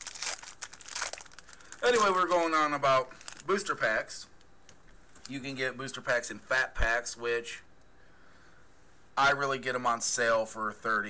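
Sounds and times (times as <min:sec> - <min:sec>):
foil wrapper crinkling: 0:00.0 - 0:03.8.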